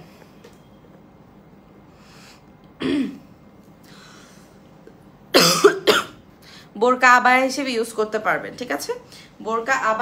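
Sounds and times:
woman clearing her throat: 2.8 - 3.3, 5.4 - 6.2
woman coughing: 2.8 - 3.3, 5.3 - 6.2.

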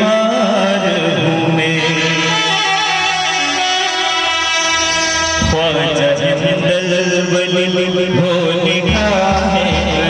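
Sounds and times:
man singing amplified: 0.0 - 10.0.

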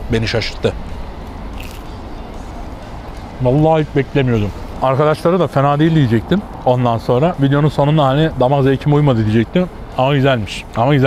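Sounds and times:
low street rumble: 0.0 - 11.0
person chewing pizza: 1.6 - 1.9.

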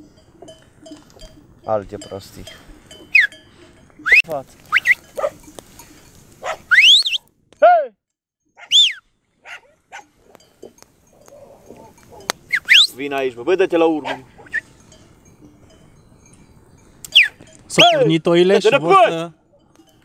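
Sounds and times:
dogs barking and yelping: 3.0 - 3.4, 4.1 - 5.5, 6.4 - 7.2, 8.6 - 12.9, 14.0 - 14.7.

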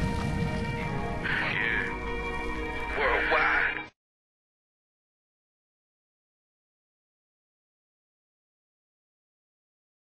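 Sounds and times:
low rumble: 0.0 - 2.6
dramatic intro music: 0.0 - 4.0.

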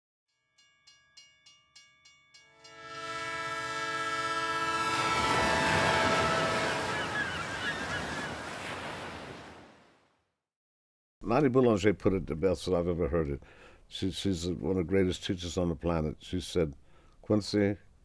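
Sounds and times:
bell ringing: 0.4 - 3.1
locomotive horn: 2.5 - 8.6
passing train rumble: 2.6 - 9.0.

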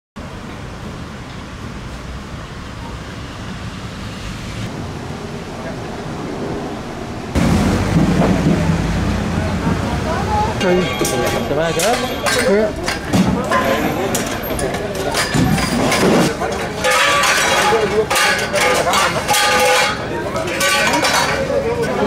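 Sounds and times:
street noise rumble: 0.2 - 22.0
people talking nearby: 8.2 - 22.0.

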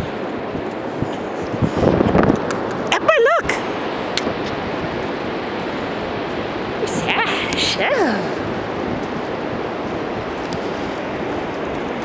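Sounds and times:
surf washing on beach: 0.0 - 12.0.

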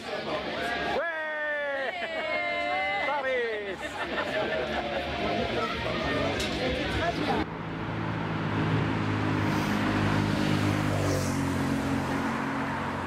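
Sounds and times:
crowd chatter: 0.0 - 8.2
steady engine hum: 3.7 - 13.0.

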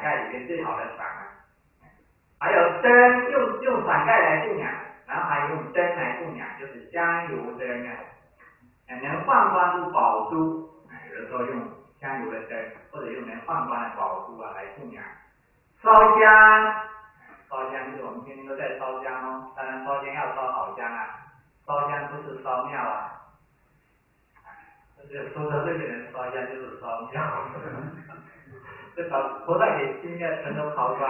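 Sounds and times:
man lecturing: 0.0 - 1.2, 2.4 - 8.1, 8.9 - 15.1, 17.2 - 23.2, 24.5 - 31.0
man speaking: 0.0 - 1.3, 2.4 - 8.1, 8.9 - 15.1, 15.8 - 23.2, 24.4 - 31.0.

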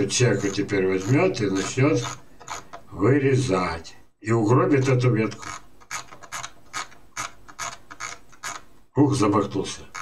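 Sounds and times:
mouse scroll wheel clicking: 0.0 - 2.9, 4.8 - 8.7.

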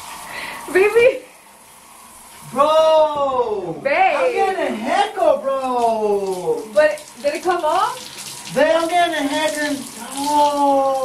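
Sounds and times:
shower head spraying water: 0.0 - 11.0.

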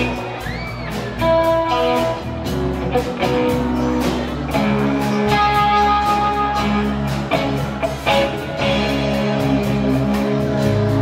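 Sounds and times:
drums: 0.0 - 11.0
electric bass: 0.0 - 11.0
electric guitar chords: 0.0 - 11.0.

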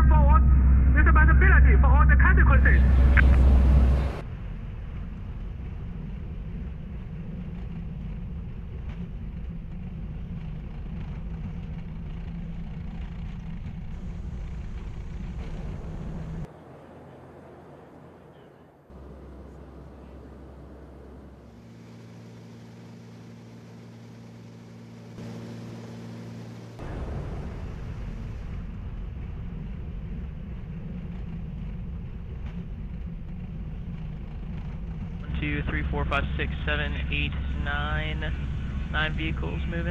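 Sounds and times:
aircraft cabin drone: 0.0 - 39.9
steady humming tones: 0.0 - 39.9.

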